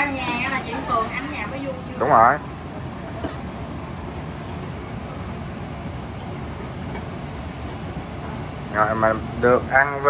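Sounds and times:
fish frying in hot oil: 0.0s - 10.0s.

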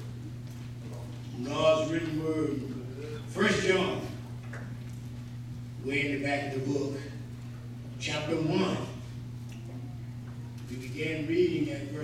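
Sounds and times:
low electrical hum: 0.0s - 12.0s
man speaking through microphone: 1.3s - 4.2s, 5.8s - 7.2s, 8.0s - 9.1s, 10.7s - 12.0s.

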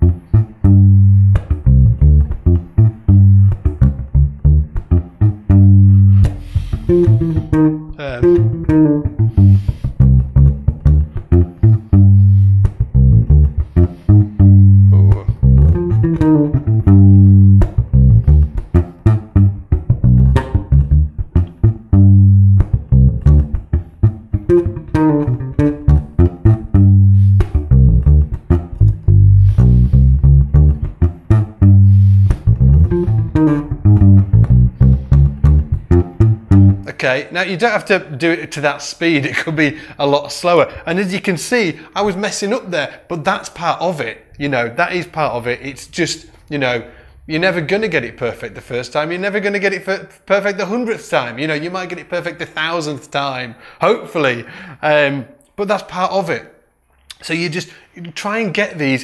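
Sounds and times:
fingerstyle electric bass groove: 0.0s - 36.9s.

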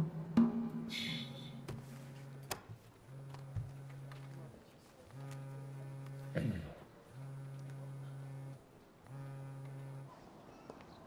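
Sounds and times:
mobile phone vibrating: 1.0s - 4.5s, 5.1s - 10.1s.

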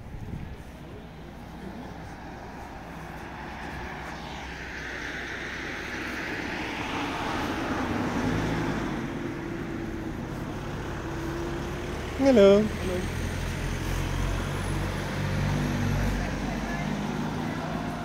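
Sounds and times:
low traffic hum: 0.0s - 18.0s
car driving past: 0.9s - 18.0s.

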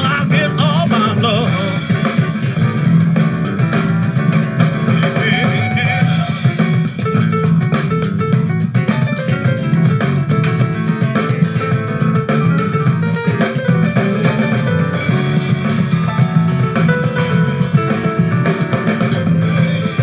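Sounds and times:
drum kit: 0.0s - 20.0s
guitar: 0.0s - 20.0s
piano: 0.0s - 20.0s.

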